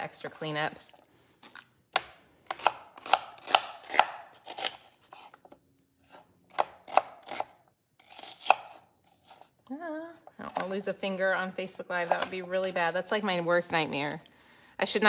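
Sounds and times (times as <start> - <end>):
knife chopping on wooden board: 1.9 - 5.4, 6.0 - 9.4, 12.0 - 12.4.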